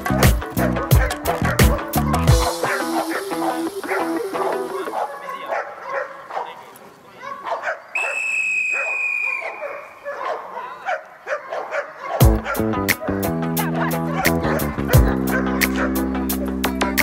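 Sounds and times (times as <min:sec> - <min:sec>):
background music: 0:00.0 - 0:05.2, 0:12.2 - 0:17.0
dog barking and yipping: 0:00.3 - 0:16.1.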